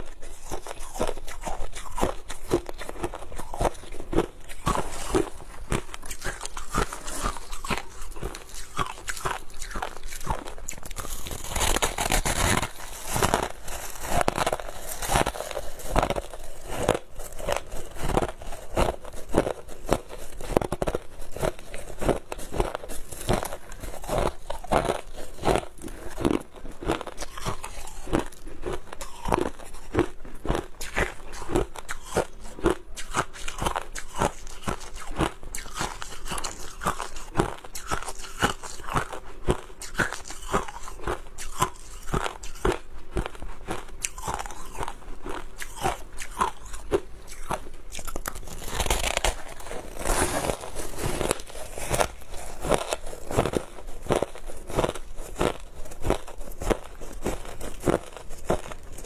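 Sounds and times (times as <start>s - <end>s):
crushed ice being chewed: 0.0s - 59.0s.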